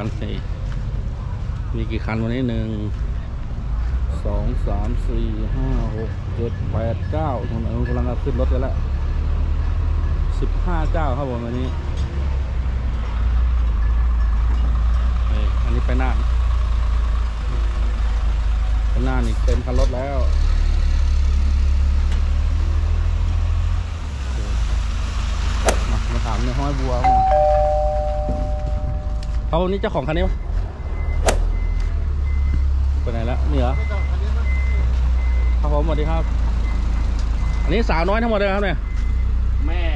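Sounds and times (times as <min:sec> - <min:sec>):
diesel truck engine rumbling: 0:12.1 - 0:39.6
vehicle engine rumbling: 0:22.5 - 0:35.4
sharp click: 0:25.7 - 0:26.0, 0:31.2 - 0:31.6
faint high beeping: 0:27.1 - 0:29.6.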